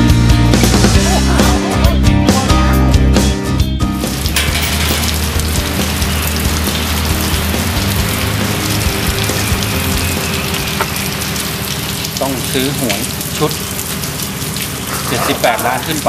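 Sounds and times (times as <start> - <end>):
rock music: 0.0 - 11.0
rain hissing: 4.0 - 16.0.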